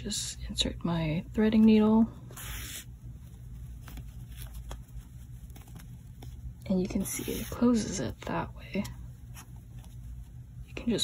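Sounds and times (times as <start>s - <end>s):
yarn rustling: 1.8s - 8.3s.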